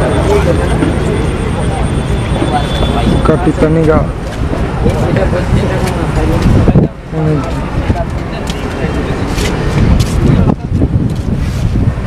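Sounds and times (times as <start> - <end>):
people talking indistinctly: 0.0 - 11.4
steady low rumble: 0.0 - 12.0.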